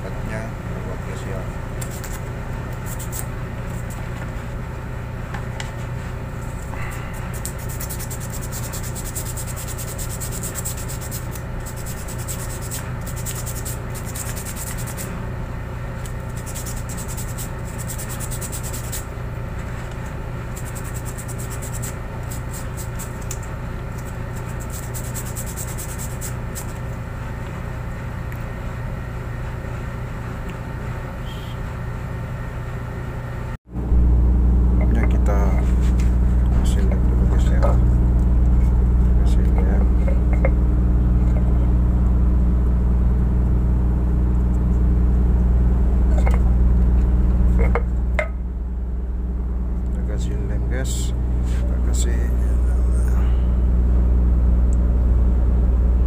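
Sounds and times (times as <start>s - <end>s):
low rumble of ship machinery: 0.0s - 56.0s
steady electrical hum: 0.0s - 56.0s
scratchy rubbing of rubber sheet: 6.8s - 15.1s, 16.3s - 19.0s, 24.4s - 26.8s.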